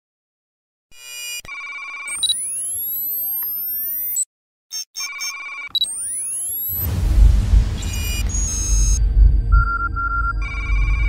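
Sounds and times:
pulsing beeps: 1.2s - 6.9s, 7.7s - 11.0s
electronic warble: 5.8s - 11.0s
rising tone sweeps: 6.7s - 11.0s.

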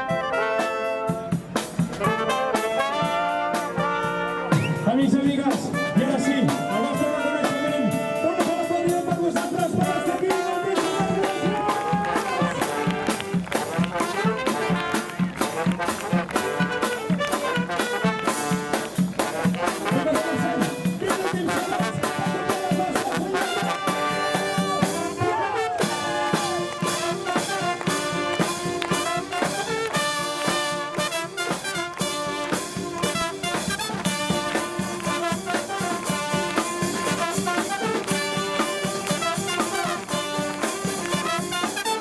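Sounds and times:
bass drum and snare beat: 0.0s - 42.0s
street brass band playing: 0.0s - 42.0s.

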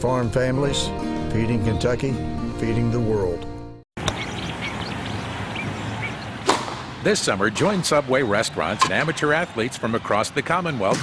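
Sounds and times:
sharp whack: 6.4s - 6.9s.

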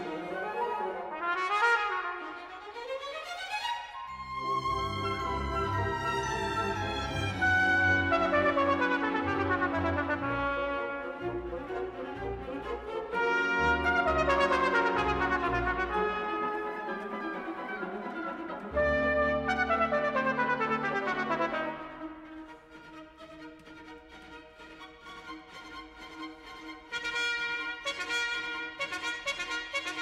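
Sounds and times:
trumpet with orchestra: 0.0s - 2.9s, 4.1s - 22.7s, 26.7s - 30.0s.

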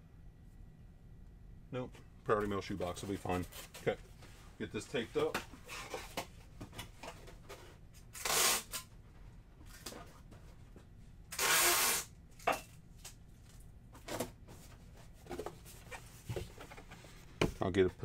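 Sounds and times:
packing tape ripping off roll: 8.0s - 8.9s, 11.3s - 12.1s.

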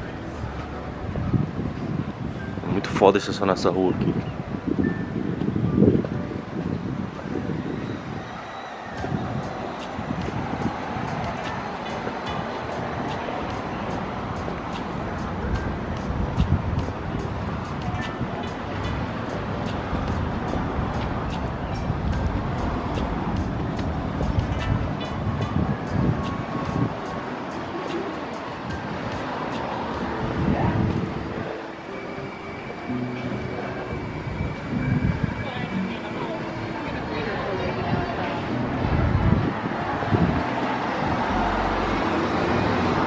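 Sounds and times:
background music: 0.0s - 43.0s
car traffic: 0.0s - 43.0s
voices: 7.2s - 43.0s.

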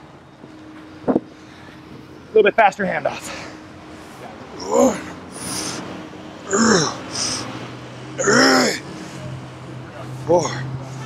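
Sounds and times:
man grunting with effort: 4.5s - 5.2s, 6.4s - 7.4s, 8.2s - 8.8s.

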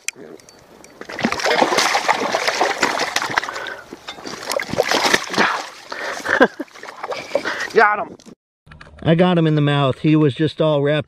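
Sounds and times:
fish splashing in water: 1.0s - 7.7s.

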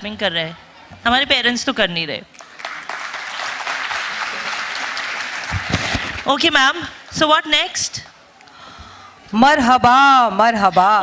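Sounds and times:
audience clapping: 2.4s - 6.3s.

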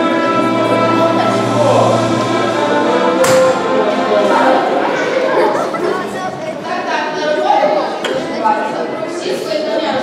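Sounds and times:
audience chattering in a hall: 0.0s - 10.0s.

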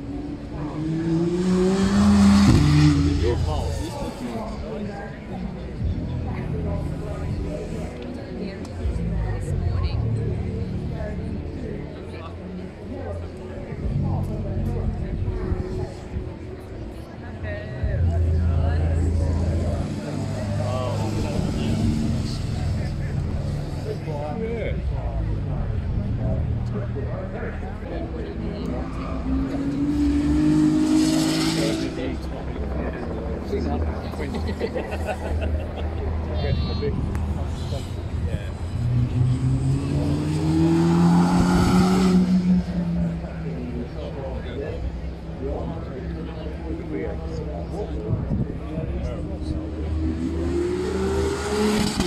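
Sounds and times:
crowd chatter: 0.0s - 52.0s
spectators talking: 0.0s - 52.0s
sports car engines rumbling: 0.0s - 52.0s.

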